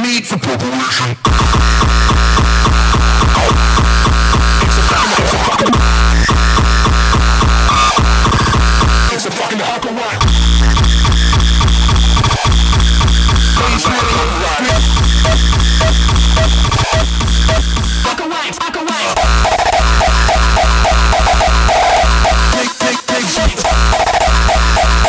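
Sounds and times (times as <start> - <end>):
hardcore electronic dance music: 0.0 - 25.0
distorted kick drum: 1.3 - 9.2, 10.2 - 18.1, 19.1 - 25.0.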